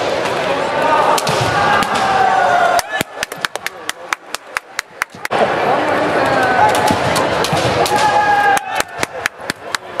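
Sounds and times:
hand clapping: 2.8 - 5.3, 8.5 - 10.0.

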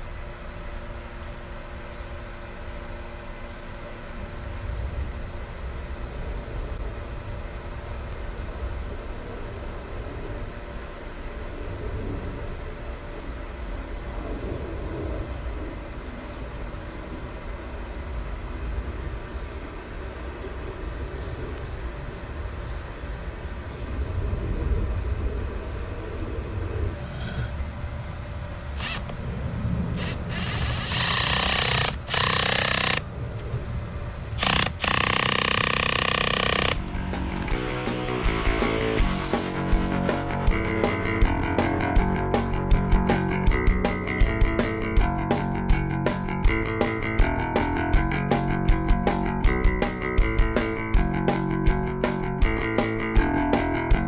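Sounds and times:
low rumbling background: 0.0 - 54.0
cordless drill running: 28.8 - 29.2, 30.0 - 33.1, 34.4 - 37.5
guitar music: 36.8 - 54.0.

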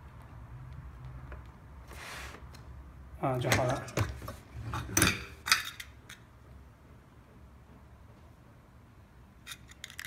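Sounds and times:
room hum: 0.0 - 10.0
small metallic clicks: 9.4 - 10.0.

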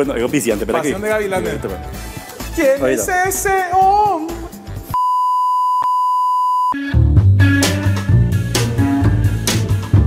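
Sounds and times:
music: 0.0 - 5.0, 6.8 - 10.0
electronic test tone: 5.0 - 7.5.

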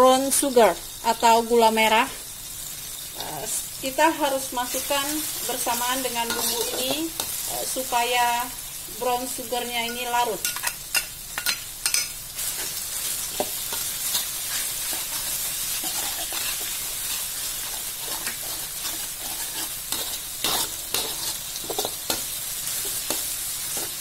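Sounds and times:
food sizzling in hot oil: 0.0 - 24.0
metal spatula scraping wok: 4.2 - 7.9, 9.8 - 24.0.

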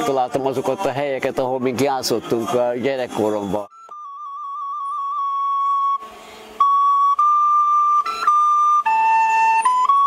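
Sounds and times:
recorder long held notes: 3.7 - 10.0.

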